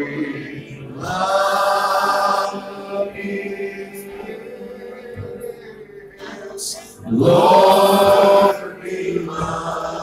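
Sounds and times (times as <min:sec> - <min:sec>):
congregation chanting and singing: 0:00.0 - 0:10.0.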